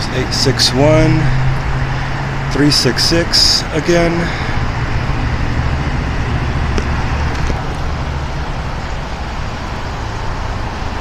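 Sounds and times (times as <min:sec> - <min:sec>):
street traffic: 0:00.0 - 0:11.0
vehicle engines idling: 0:00.0 - 0:11.0.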